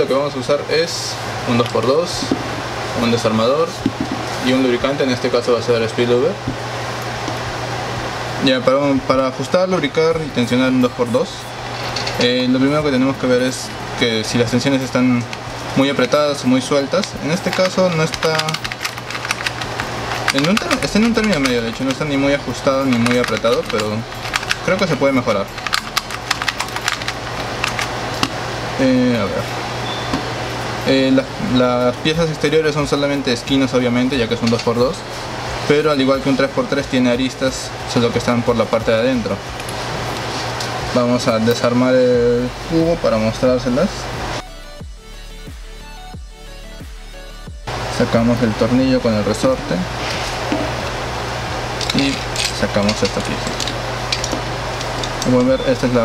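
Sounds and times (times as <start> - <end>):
steady low hum: 0.0 - 56.0
puzzle cube layers clacking: 17.4 - 22.1.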